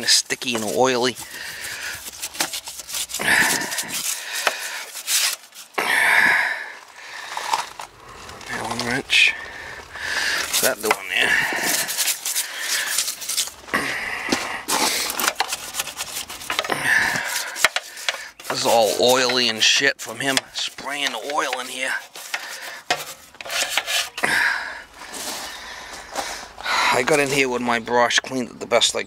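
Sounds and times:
stiff brush scrubbing sheet metal: 0.0 - 6.4, 8.5 - 25.6.

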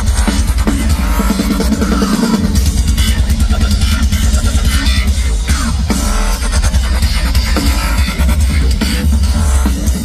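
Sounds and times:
country rock band playing loud: 0.0 - 10.0
heavy bass: 0.0 - 10.0.

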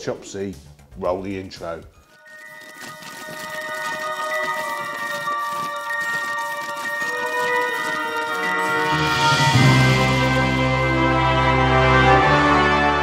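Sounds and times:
intro music with ringing tones: 2.0 - 12.6.

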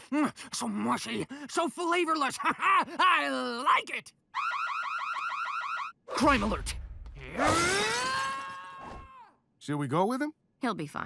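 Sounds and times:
rising electronic alarm chirps: 4.4 - 6.0.

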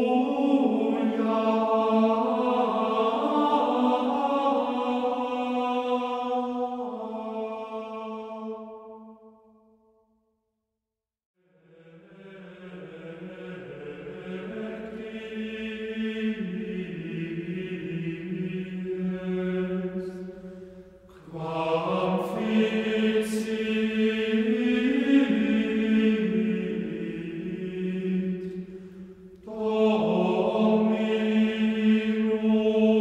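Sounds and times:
slow sung chant: 0.0 - 9.5, 11.4 - 33.0.

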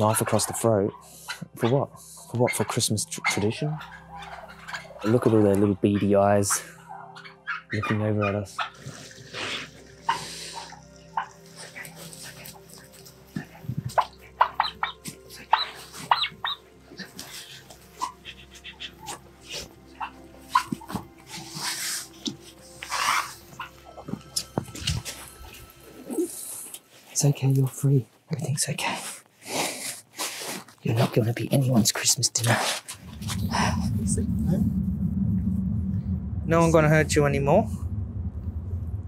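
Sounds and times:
turkeys yelping: 0.0 - 24.1
low music drone: 0.0 - 27.0, 32.9 - 39.0.

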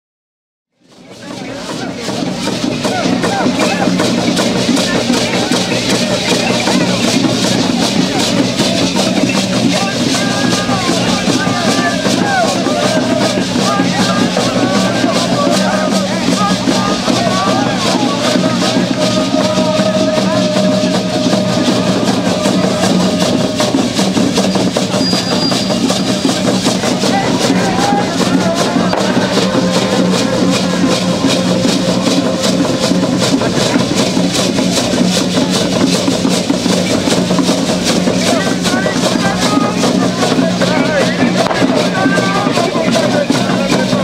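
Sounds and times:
crowd voices: 0.8 - 44.0
drum beating: 0.8 - 44.0.

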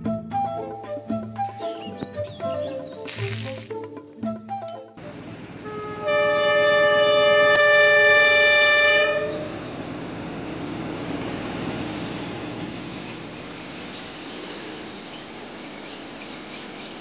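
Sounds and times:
locomotive horn chord: 5.0 - 9.6
train rumbling along track: 5.0 - 17.0.

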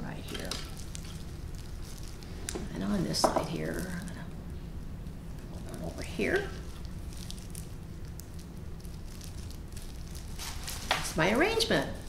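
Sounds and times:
low steady hum: 0.0 - 12.0
plastic gloves crackling: 0.0 - 12.0.

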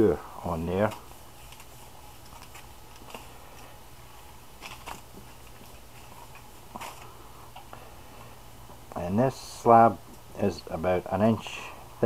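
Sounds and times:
steady low hum: 0.0 - 12.0
foil crinkling: 0.8 - 3.7, 4.5 - 7.2.

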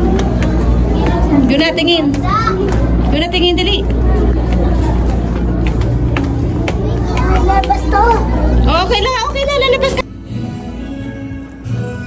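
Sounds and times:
indistinct voices: 0.0 - 10.0
child speaking: 2.1 - 2.8, 6.8 - 8.6.

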